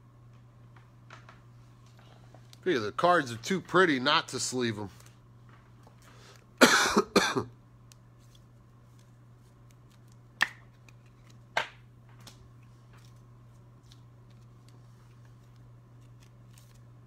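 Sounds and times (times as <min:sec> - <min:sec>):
faint room hum: 0:00.0 - 0:17.0
man coughing: 0:06.6 - 0:07.5.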